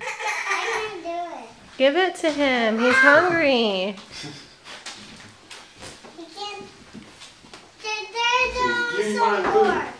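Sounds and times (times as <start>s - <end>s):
child's sing-song voice: 7.8s - 9.9s.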